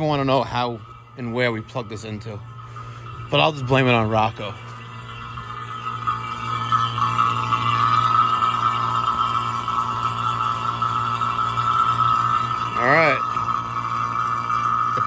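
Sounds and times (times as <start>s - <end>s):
vacuum pump humming and whining: 0.0s - 15.0s.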